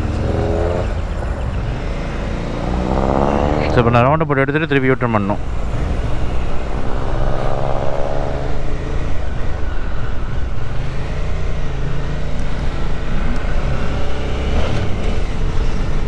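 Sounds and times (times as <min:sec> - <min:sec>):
wind and road noise: 0:00.0 - 0:16.0.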